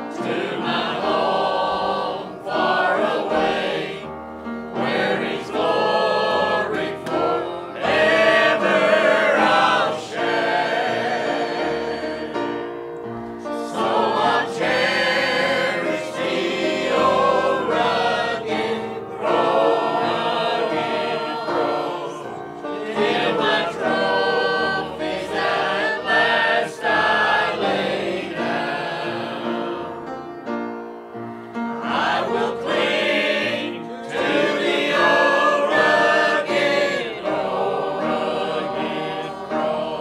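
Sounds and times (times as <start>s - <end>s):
choir singing a hymn: 0.0s - 40.0s.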